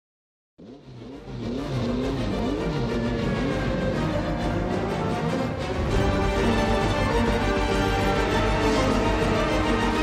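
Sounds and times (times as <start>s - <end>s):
racing car engine revving: 0.6s - 10.0s.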